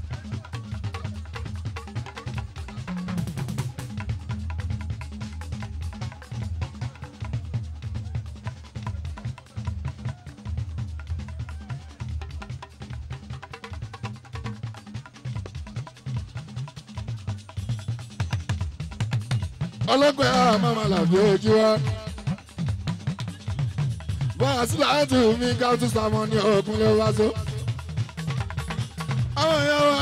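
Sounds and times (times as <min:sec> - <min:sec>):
drums and percussion: 0:00.0 - 0:30.0.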